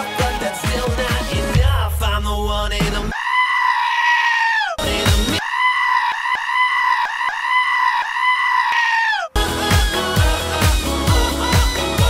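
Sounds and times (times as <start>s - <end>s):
pop song: 0.0s - 3.2s, 4.8s - 5.4s, 9.4s - 12.0s
goat screaming: 3.1s - 4.8s, 5.4s - 9.4s.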